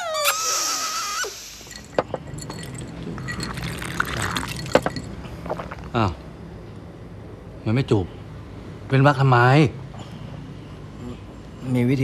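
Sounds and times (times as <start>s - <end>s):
glasses clinking: 1.4s - 5.8s.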